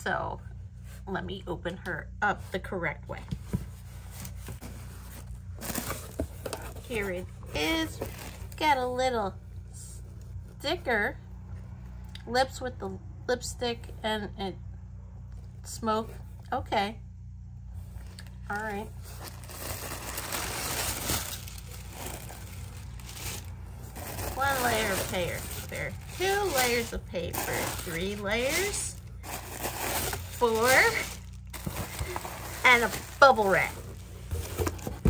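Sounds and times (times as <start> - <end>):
cardboard flaps rustling scrape: 3.4 - 8.6, 19.0 - 35.0
tissue paper crinkling: 3.7 - 8.6, 18.0 - 35.0.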